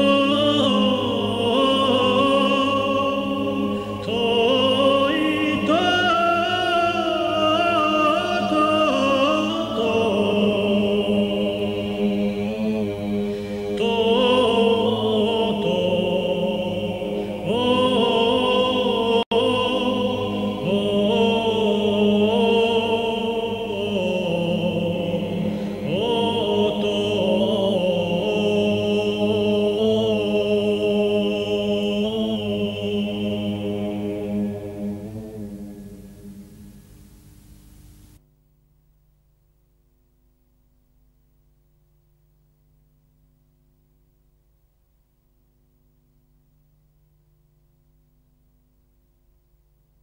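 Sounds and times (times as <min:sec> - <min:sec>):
slow sung chant: 0:00.0 - 0:38.2
low drone: 0:06.5 - 0:38.2.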